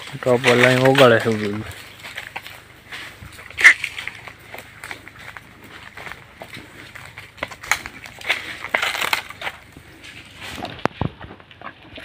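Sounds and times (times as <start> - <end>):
rustling in dry leaves: 0.0 - 12.0.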